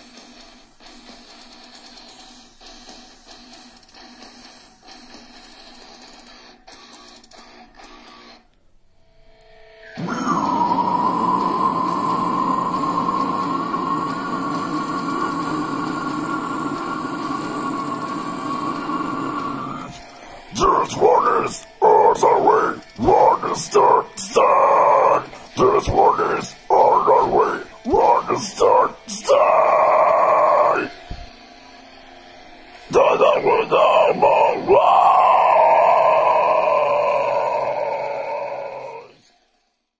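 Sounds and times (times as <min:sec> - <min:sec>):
screamed vocal: 0:09.9 - 0:31.2, 0:32.9 - 0:39.3.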